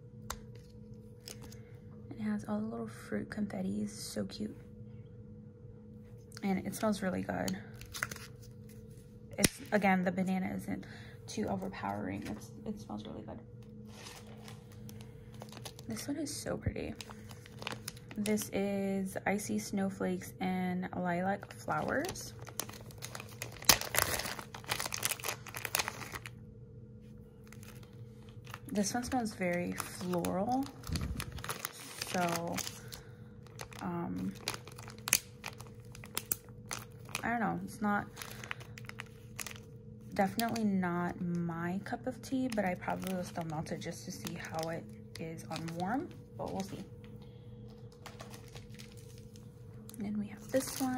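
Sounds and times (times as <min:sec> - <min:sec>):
faint steady hum: 0:00.0 - 0:50.9
plastic bag handled: 0:13.7 - 0:18.6, 0:21.2 - 0:26.3, 0:27.4 - 0:40.6, 0:42.2 - 0:47.0, 0:47.7 - 0:49.6, 0:50.4 - 0:50.9.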